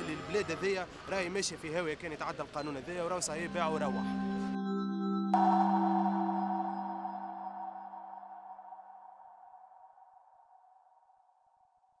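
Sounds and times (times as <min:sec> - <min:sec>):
jingle closing chord ringing: 0:03.4 - 0:08.8
faint high tone: 0:05.4 - 0:09.7.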